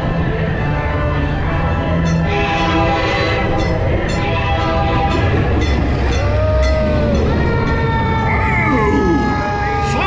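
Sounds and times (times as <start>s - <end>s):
siren-like wails: 6.0s - 10.0s.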